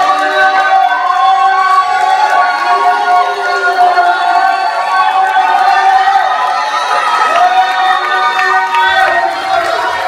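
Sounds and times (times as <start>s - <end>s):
crowd cheering and calling out: 0.0s - 10.0s.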